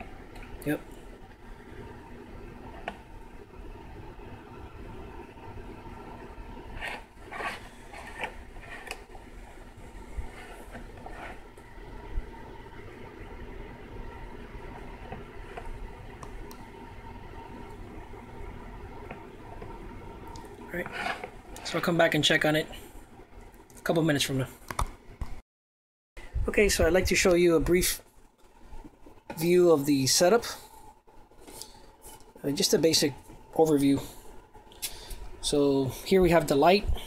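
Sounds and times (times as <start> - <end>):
low room hum: 0.0 - 25.4, 26.2 - 37.0.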